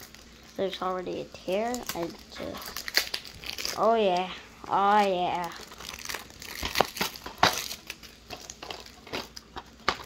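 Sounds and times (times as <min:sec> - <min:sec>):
plastic shrink-wrap tearing: 0:00.0 - 0:04.3, 0:04.9 - 0:10.0.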